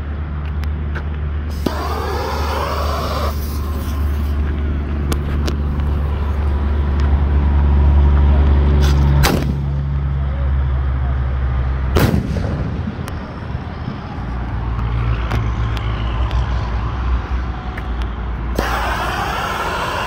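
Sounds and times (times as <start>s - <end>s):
low engine-like hum: 0.0s - 20.0s
firework shell bursts: 1.5s - 4.4s.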